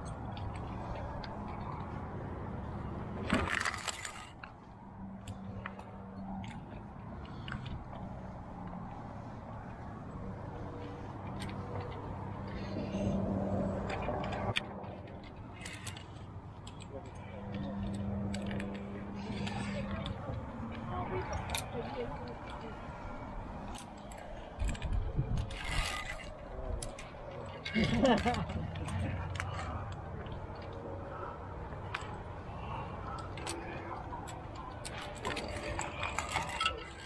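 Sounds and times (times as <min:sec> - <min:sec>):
carabiners clinking on steel cable: 0:02.7 - 0:09.0, 0:09.6 - 0:37.0.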